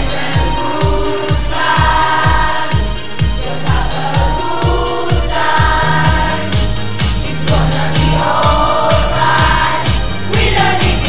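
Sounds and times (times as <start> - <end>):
singing voices: 0.0 - 11.0
steady kick drum: 0.0 - 11.0
upbeat pop song: 0.0 - 11.0.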